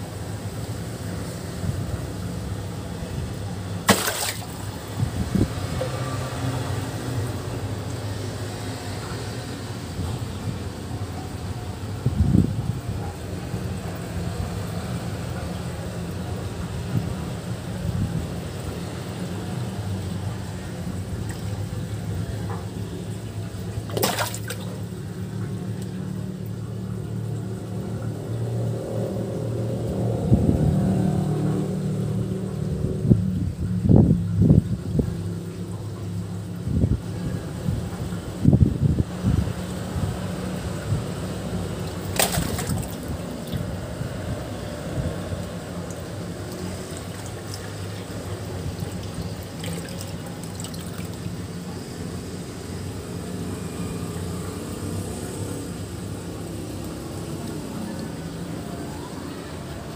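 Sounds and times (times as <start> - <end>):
hose water splashing into pond: 0.0 - 8.7, 13.6 - 33.0, 39.0 - 53.4, 54.2 - 58.9.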